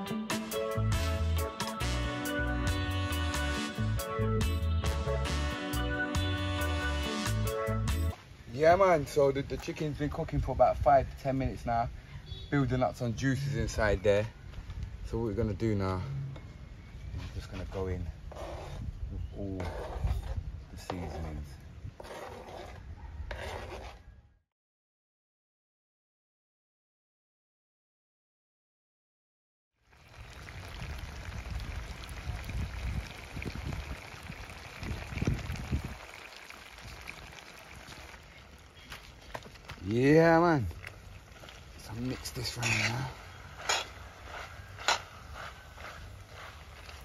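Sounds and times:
knife scraping cutting board: 18.3 - 18.8, 19.6 - 21.3, 22.0 - 24.1, 42.5 - 46.5
food mixed by hand in a pot: 30.1 - 47.0.

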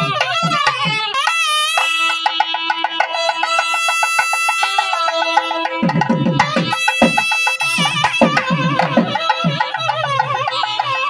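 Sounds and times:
rapid drum strokes: 0.0 - 11.0.

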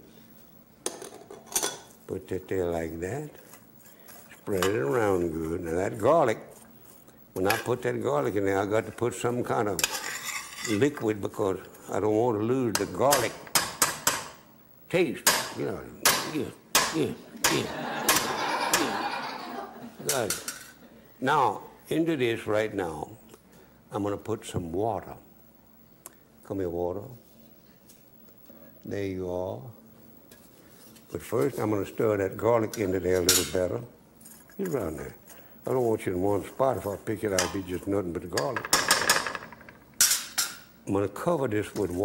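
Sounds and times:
metal spoon stirring in skillet: 9.8 - 10.8
person chuckling: 17.3 - 20.0.

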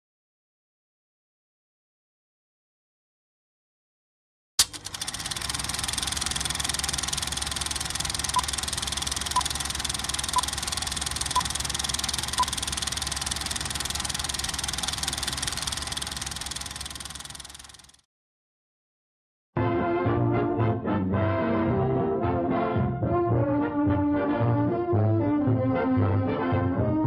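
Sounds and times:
projector click: 4.6 - 17.9
film projector clatter: 4.6 - 18.0
short beeps: 9.3 - 9.5, 11.3 - 11.6, 12.3 - 12.6.

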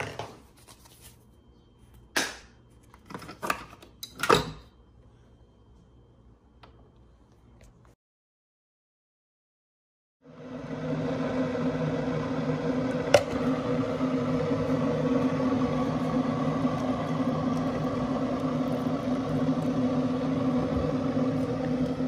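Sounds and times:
machine hum with low tones: 10.2 - 22.0.

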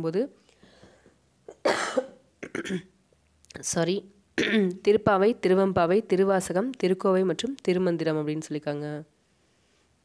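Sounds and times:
person coughing: 1.5 - 3.0, 4.4 - 4.7.

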